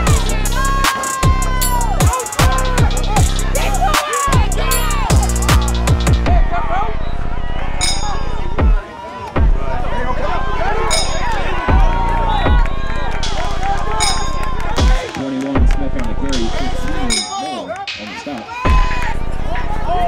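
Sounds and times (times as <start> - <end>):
music with heavy bass and drums: 0.0 - 6.5, 8.6 - 8.8, 9.4 - 9.7, 11.6 - 17.2, 17.9 - 19.3.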